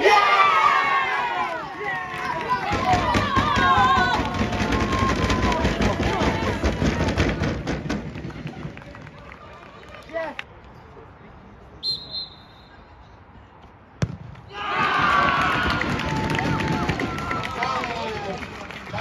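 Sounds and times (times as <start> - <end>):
crowd cheer: 0.0 - 10.4, 14.4 - 19.0
spectators shouting and cheering: 0.0 - 10.4, 14.4 - 19.0
referee's whistle: 11.8 - 12.9
ball kicked with a thud: 14.0 - 14.5.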